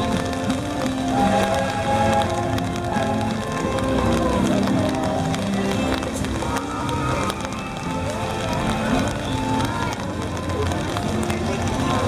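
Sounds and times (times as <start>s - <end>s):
background music: 0.0s - 12.0s
footsteps: 0.0s - 12.0s
people talking: 0.0s - 12.0s.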